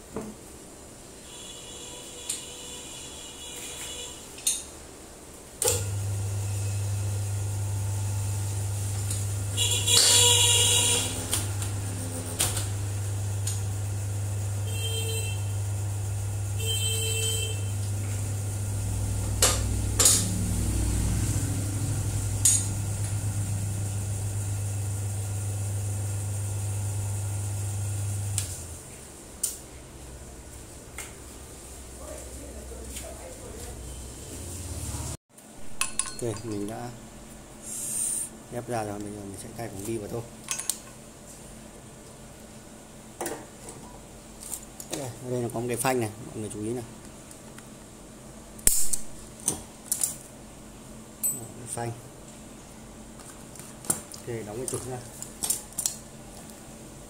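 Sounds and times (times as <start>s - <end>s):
hydraulic press pump humming: 5.6s - 28.8s
brief hiss: 37.6s - 38.4s.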